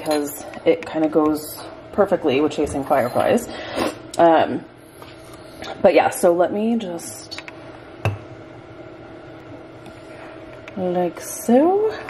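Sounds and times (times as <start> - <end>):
steady low room hum: 0.0 - 12.0
ceramic knocking on countertop: 8.0 - 8.3.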